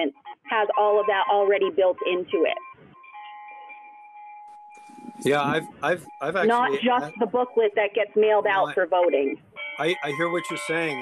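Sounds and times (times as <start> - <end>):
faint electronic tones: 0.0 - 11.0
telephone line hiss: 3.1 - 7.7.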